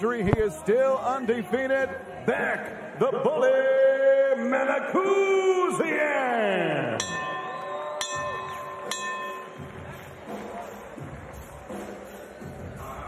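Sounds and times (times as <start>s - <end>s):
arena noise: 0.0s - 13.0s
bell strikes ringing: 7.0s - 10.1s.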